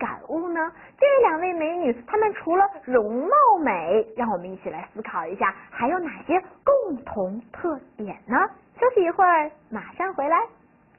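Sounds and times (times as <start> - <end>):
woman speaking: 0.0 - 10.6.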